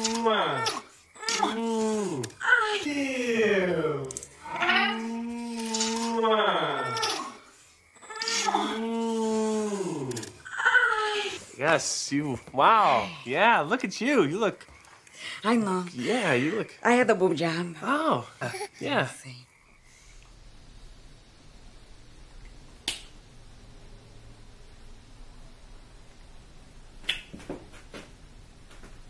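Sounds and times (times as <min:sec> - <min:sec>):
person humming while kissing: 0:00.0 - 0:03.3, 0:03.9 - 0:07.3, 0:08.2 - 0:10.4.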